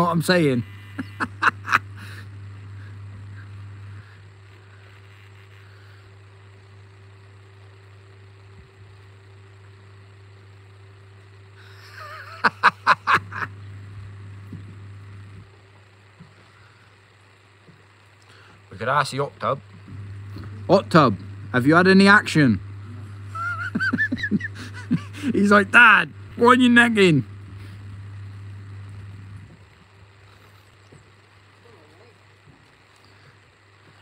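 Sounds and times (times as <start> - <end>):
low motor-like hum: 0.0 - 34.0
background hiss: 11.5 - 34.0.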